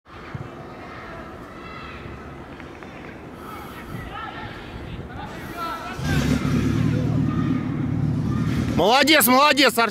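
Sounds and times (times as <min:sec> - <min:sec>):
faint shouts of players: 0:03.4 - 0:08.8.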